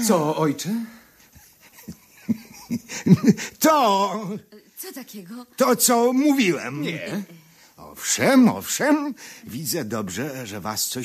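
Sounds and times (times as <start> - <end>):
person speaking: 5.6 - 8.5.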